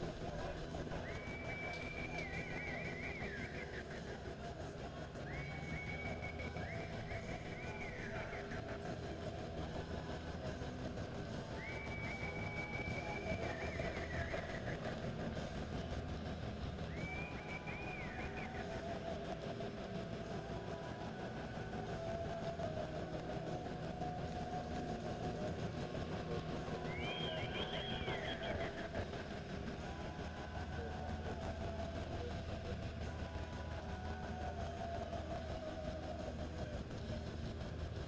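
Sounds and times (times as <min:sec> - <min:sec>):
mechanical hum: 0:00.0 - 0:38.0.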